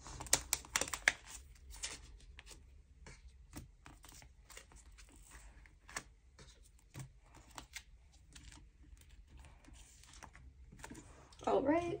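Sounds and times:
plastic pocket pages clicking: 0.1 - 1.2.

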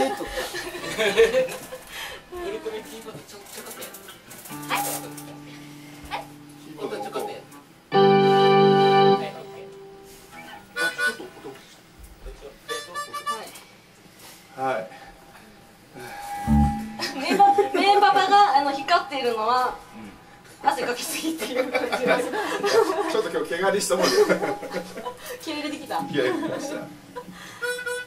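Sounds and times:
harmonica chords: 4.5 - 11.5, 12.7 - 13.6, 16.0 - 20.2, 26.0 - 28.0.

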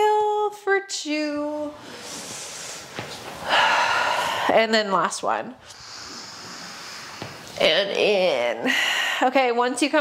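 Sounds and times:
woman breathing hard: 1.8 - 4.7, 8.6 - 9.3.

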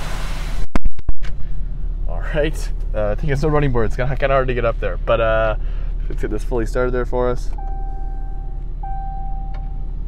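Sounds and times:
diesel engine idling: 1.4 - 10.0.

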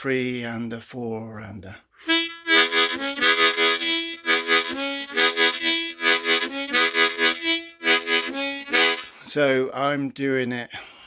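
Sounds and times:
harmonica chugging blues rhythm: 2.0 - 9.6.

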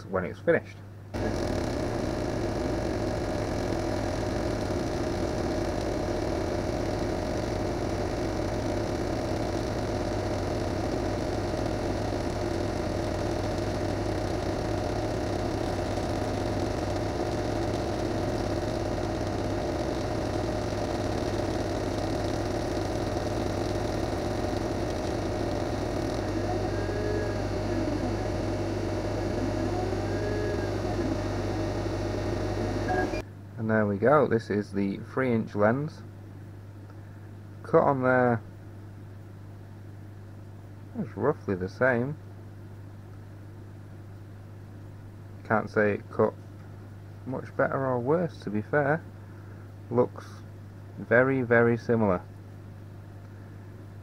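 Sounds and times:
laser cutter humming and whirring: 1.2 - 33.2
motors whining: 1.2 - 33.2.

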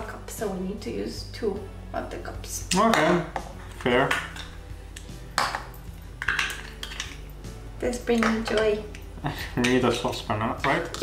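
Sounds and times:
plastic measuring cups clacking: 5.4 - 7.2, 8.1 - 8.8, 10.6 - 11.0.

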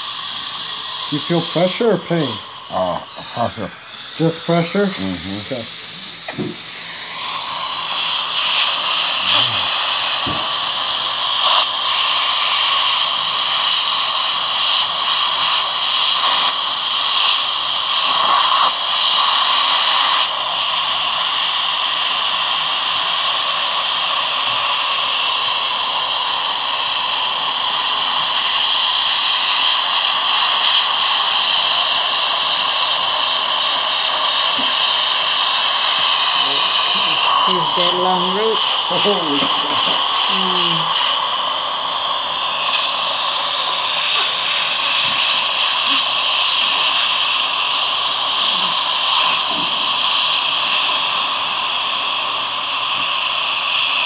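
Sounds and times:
dental suction hissing: 0.0 - 54.0.

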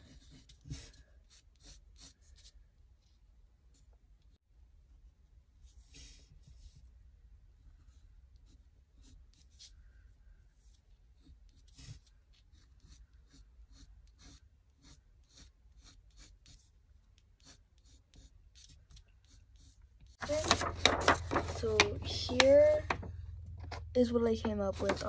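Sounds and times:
pencil scratching on paper: 0.0 - 2.6, 7.8 - 9.8, 11.1 - 20.6.

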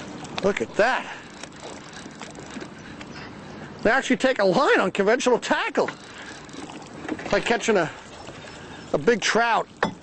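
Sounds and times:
fishing reel ticking: 0.8 - 2.8, 5.4 - 7.9.

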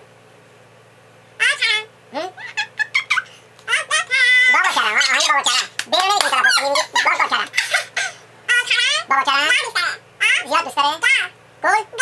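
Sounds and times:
girl laughing in squealing bursts: 6.4 - 8.2.

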